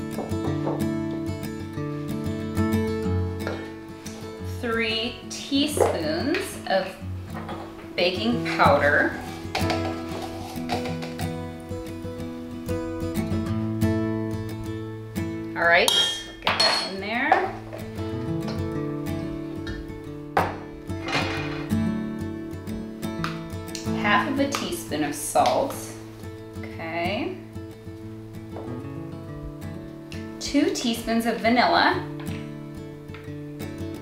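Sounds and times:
background music: 0:00.0 - 0:34.0
spoon scraping metal bowl: 0:08.4 - 0:11.2.

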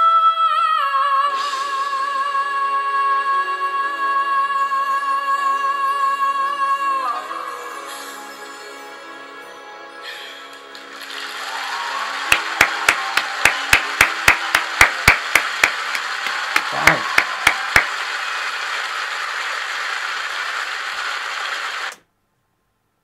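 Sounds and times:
audience applauding: 0:10.7 - 0:21.9
person clapping close to microphone: 0:12.0 - 0:18.9.

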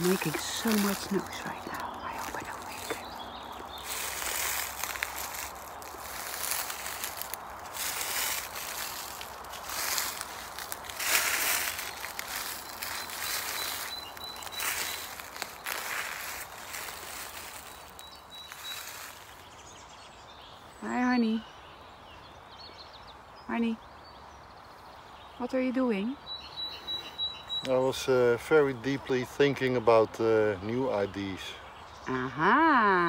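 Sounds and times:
footsteps crunching through leaves: 0:00.0 - 0:19.8.

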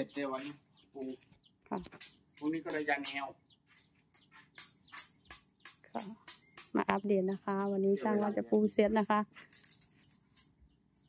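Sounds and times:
small bird chirping: 0:00.0 - 0:11.0.

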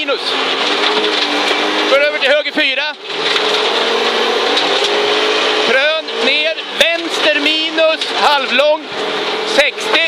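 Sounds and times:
car engine pulling at high revs: 0:00.0 - 0:10.0.

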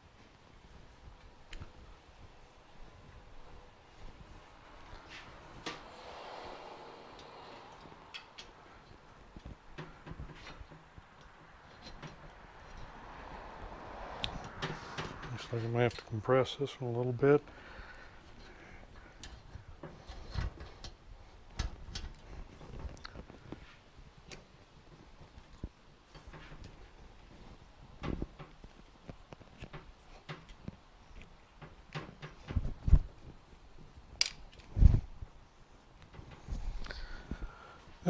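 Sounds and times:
metallic clicks and knocks: 0:07.1 - 0:13.0.

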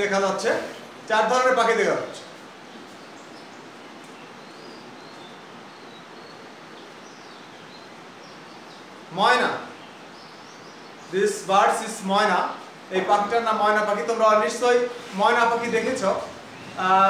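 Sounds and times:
room noise: 0:00.0 - 0:17.0
small birds chirping: 0:00.0 - 0:17.0.

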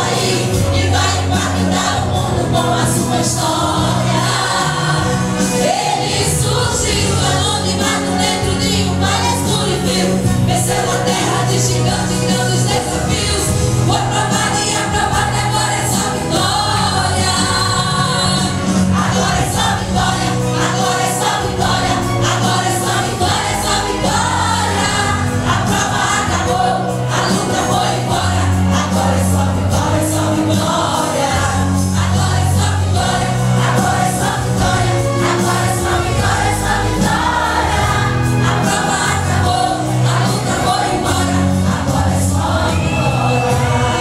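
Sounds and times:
instrumental accompaniment: 0:00.0 - 0:44.0
women singing gospel: 0:00.0 - 0:44.0.

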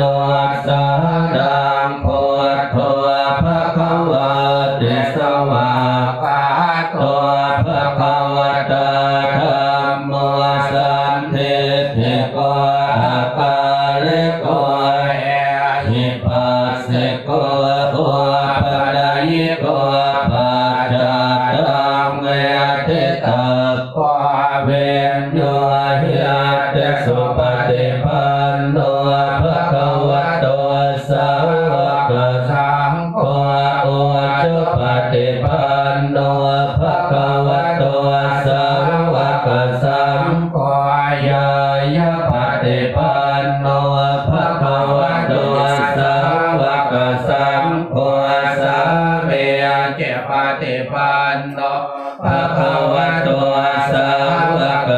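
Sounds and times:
monks chanting in unison: 0:00.0 - 0:54.9.

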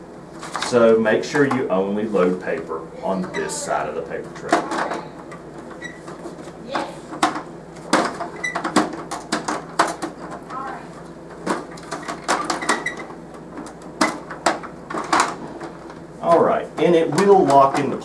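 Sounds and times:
plastic tray clicks and knocks: 0:16.3 - 0:18.0.

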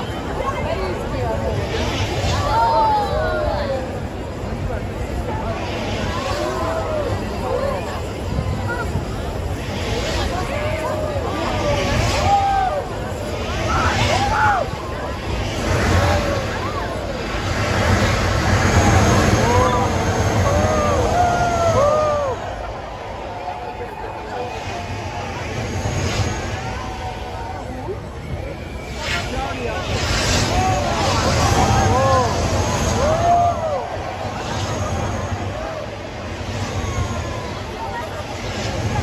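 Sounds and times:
crowd voices: 0:00.0 - 0:39.0
gas flame blasting: 0:05.1 - 0:27.7, 0:28.7 - 0:39.0.

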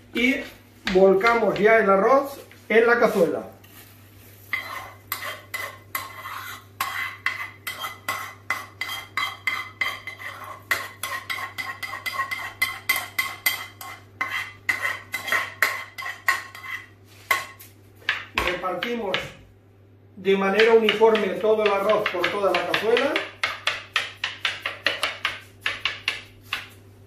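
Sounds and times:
metal spoon scraping a pan: 0:04.4 - 0:18.2.

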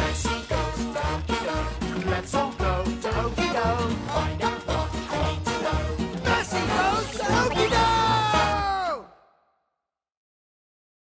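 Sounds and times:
cartoon theme tune held note: 0:06.6 - 0:08.9.

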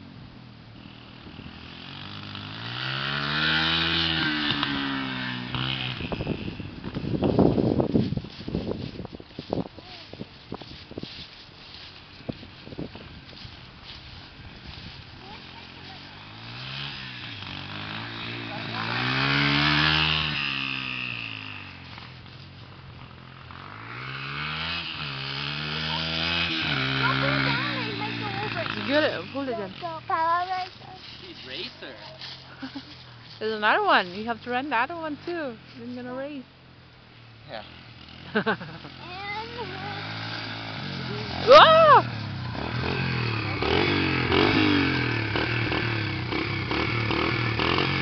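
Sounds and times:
vehicle engine passing by: 0:00.8 - 0:08.9, 0:11.0 - 0:36.2, 0:37.2 - 0:48.0.

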